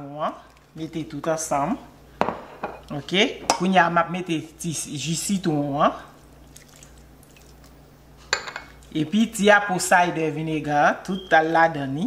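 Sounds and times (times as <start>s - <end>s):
juice trickling and dripping: 6.1s - 7.9s.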